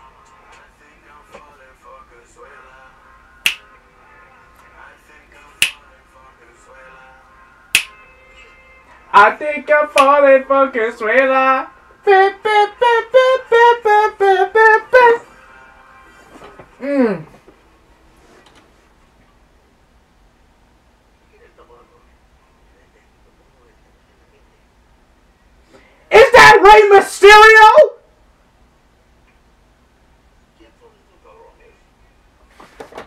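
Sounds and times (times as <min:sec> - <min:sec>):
quiet background music: 0:00.0 - 0:18.2
loud finger snaps: 0:03.4 - 0:03.7, 0:05.6 - 0:05.8, 0:07.7 - 0:08.0.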